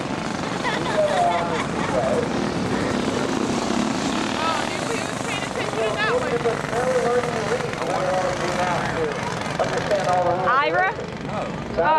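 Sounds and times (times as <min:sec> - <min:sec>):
go-kart engines running: 0:00.0 - 0:11.9.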